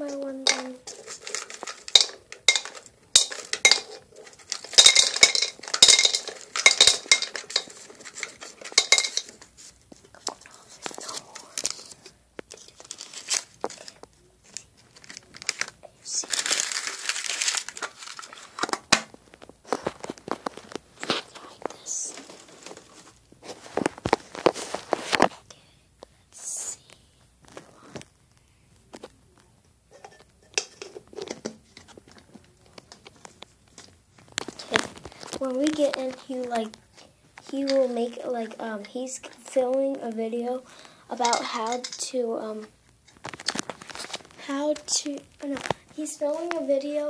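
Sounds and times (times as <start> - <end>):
metal tin handled: 0.0 - 9.5, 29.9 - 32.3
paper crinkling: 0.0 - 25.4, 30.9 - 38.4, 40.6 - 46.6.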